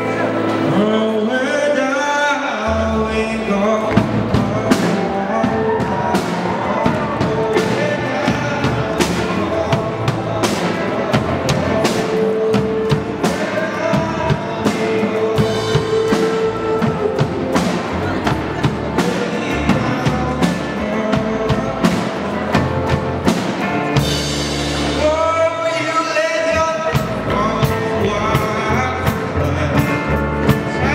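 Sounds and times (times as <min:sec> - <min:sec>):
electric guitars: 0:02.7 - 0:25.9
drum kit beat: 0:02.9 - 0:30.9.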